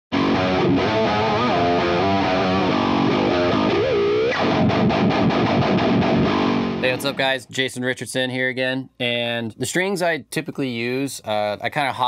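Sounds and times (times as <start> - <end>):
distorted electric guitar lead: 0.1 - 7.3
low guitar chugging: 0.2 - 7.3.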